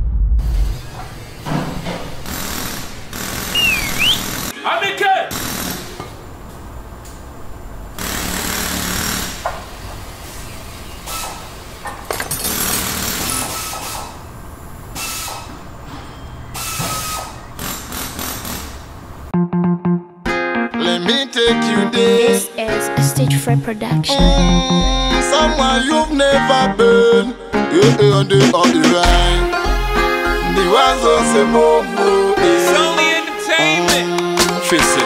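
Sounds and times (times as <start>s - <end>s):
power tool and metalworking noise: 0.8s - 4.6s, 5.3s - 19.3s.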